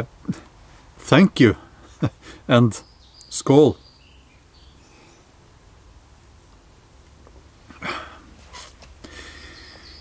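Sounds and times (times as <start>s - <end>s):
man's gruff exhale: 7.7s - 8.4s, 9.0s - 10.0s.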